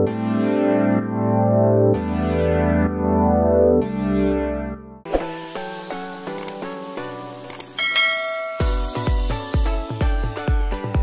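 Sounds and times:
electronic background music: 0.0s - 11.0s
short clicks: 6.3s - 6.6s, 7.4s - 7.8s
notification bell ding: 7.8s - 9.2s.

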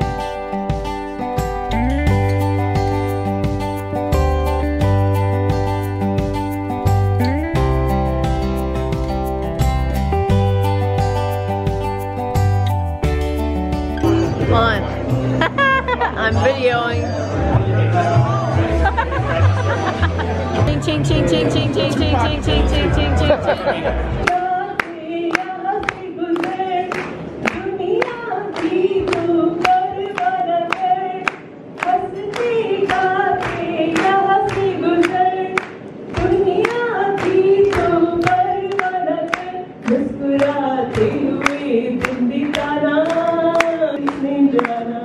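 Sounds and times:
group of people singing: 20.7s - 26.9s, 31.9s - 35.6s
hand-clapping in time: 24.2s - 45.0s.

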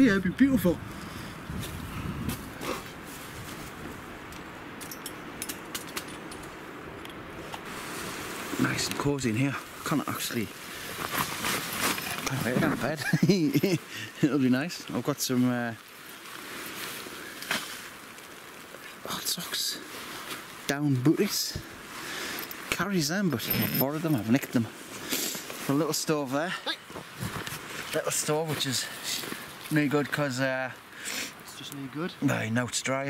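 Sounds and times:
wind through forest: 0.0s - 33.0s
nylon sacks rustling: 7.6s - 13.7s
light clicks and crunches: 10.8s - 13.2s.

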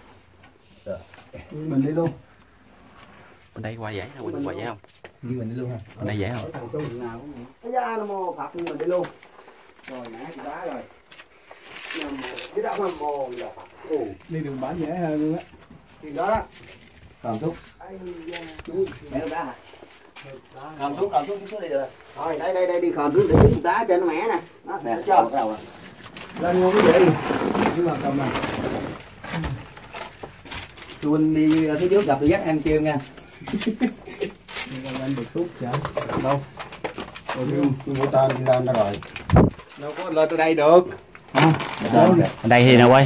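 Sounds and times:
clothes rustling: 24.9s - 40.4s.

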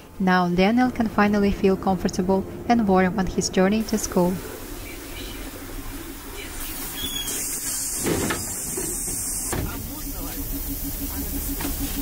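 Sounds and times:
compressed-air hiss: 6.6s - 10.9s.

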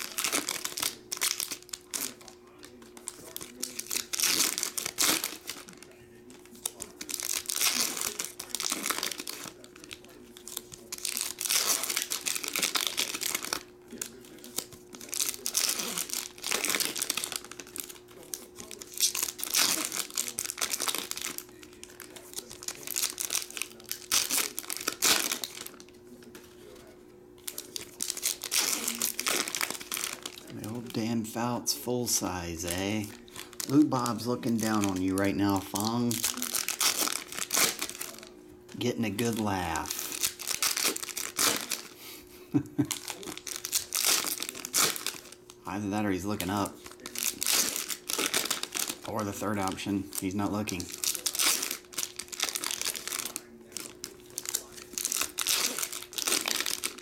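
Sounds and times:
faint steady hum: 0.0s - 57.0s
foil wrappers tearing and crinkling: 0.0s - 57.0s.

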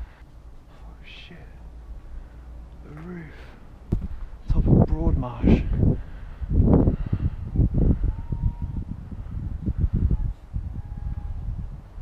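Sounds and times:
wind buffeting microphone: 3.2s - 12.0s.

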